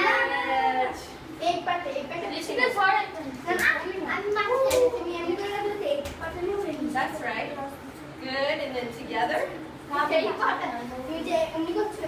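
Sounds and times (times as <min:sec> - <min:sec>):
children chattering: 0:00.0 - 0:08.1.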